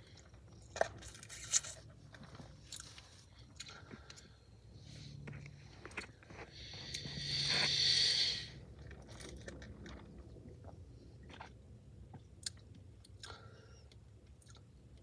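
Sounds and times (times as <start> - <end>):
slurping through a straw: 6.5 - 11.6.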